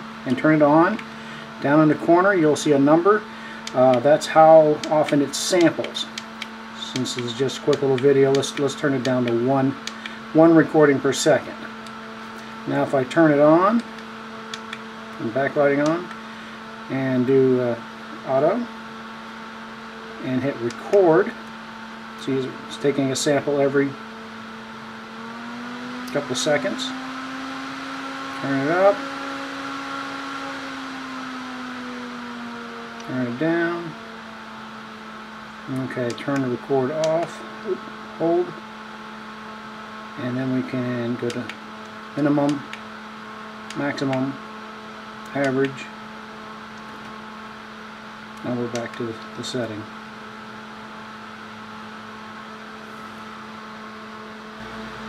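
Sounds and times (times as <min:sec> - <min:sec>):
cooling fan whirring: 0:00.0 - 0:55.0.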